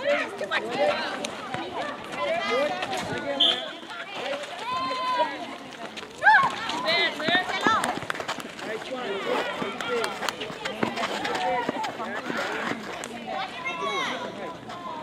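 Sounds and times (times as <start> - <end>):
players calling and shouting: 0.0 - 15.0.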